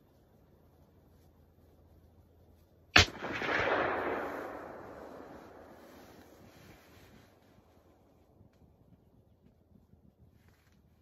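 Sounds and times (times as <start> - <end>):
rifle shot with rolling echo: 2.9 - 6.5.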